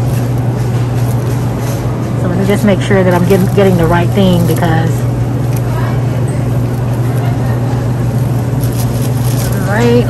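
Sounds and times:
display case low hum: 0.0 - 10.0
store background hiss: 0.0 - 10.0.

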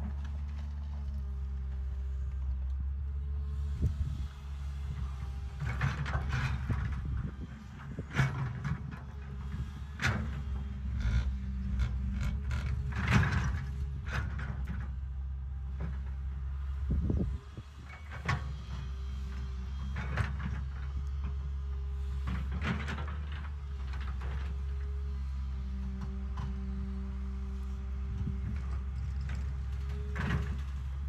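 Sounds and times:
excavator diesel engine whining: 0.0 - 31.0.

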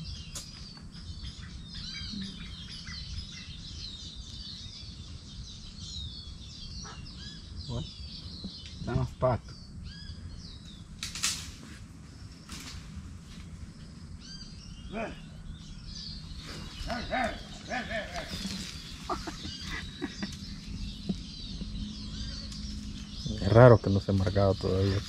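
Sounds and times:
wild birds chirping: 0.0 - 25.0.

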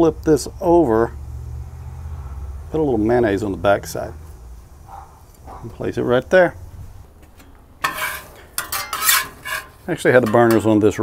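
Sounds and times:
metal spatula scraping griddle: 7.4 - 10.8.

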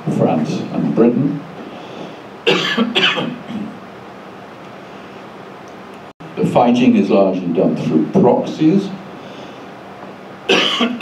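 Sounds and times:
man coughing: 2.5 - 3.8, 10.5 - 11.0.

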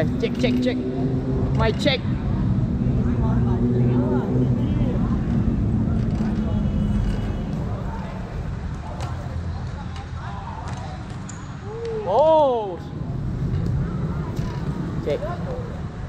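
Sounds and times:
distant voices: 0.0 - 16.0.

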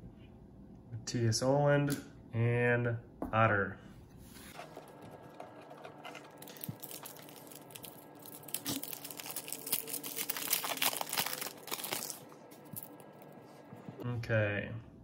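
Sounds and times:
foil wrapper tearing and crinkling: 6.1 - 13.0.

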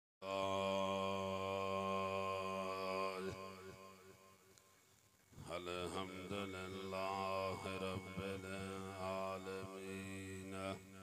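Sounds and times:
man chanting through loudspeaker: 0.2 - 4.3, 5.4 - 11.0.

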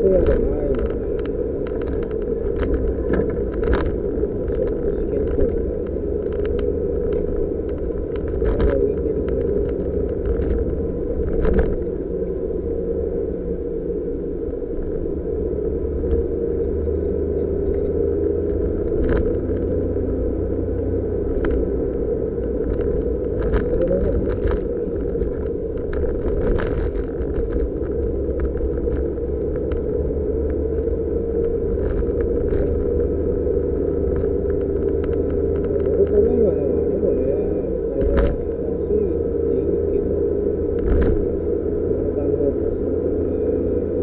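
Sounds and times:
car engine and road rumble: 0.0 - 44.0.

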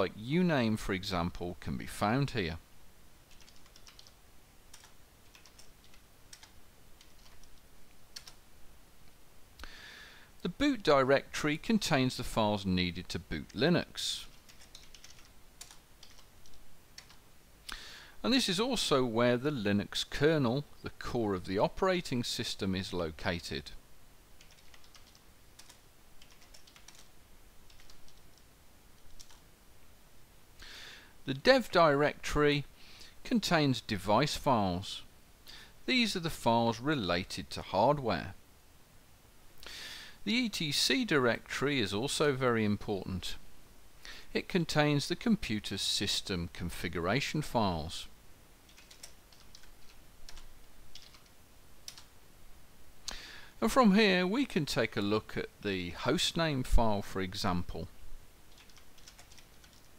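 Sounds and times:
keyboard typing: 3.3 - 8.4, 14.3 - 17.2, 24.4 - 27.1, 27.7 - 29.4, 48.7 - 52.1, 58.5 - 59.9.

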